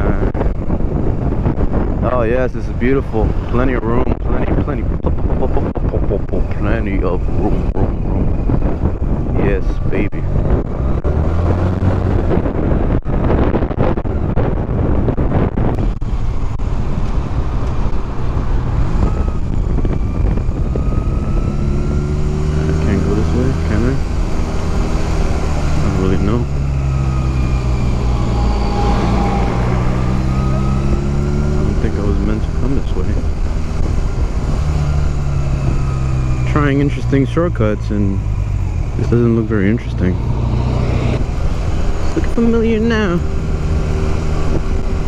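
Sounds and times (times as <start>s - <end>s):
wind buffeting microphone: 0.0s - 45.0s
motorcycle engine revving: 5.2s - 14.2s, 14.9s - 45.0s.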